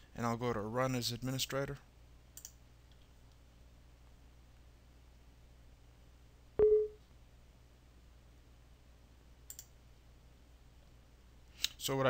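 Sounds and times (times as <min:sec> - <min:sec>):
faint clicks: 0:02.4 - 0:03.4, 0:09.5 - 0:09.8.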